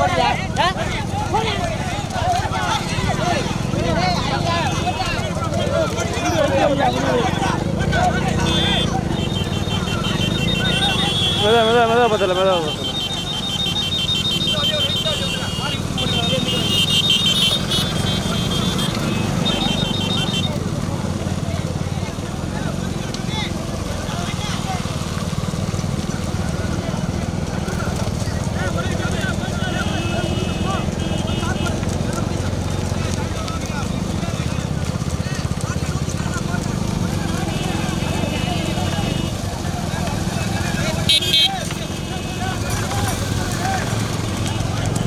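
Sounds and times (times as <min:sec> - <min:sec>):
crowd of men shouting: 0:00.0 - 0:20.4, 0:28.6 - 0:32.0
motorcycle engines humming: 0:00.0 - 0:45.0
motorcycle horn beeping: 0:08.3 - 0:20.6, 0:41.0 - 0:42.6.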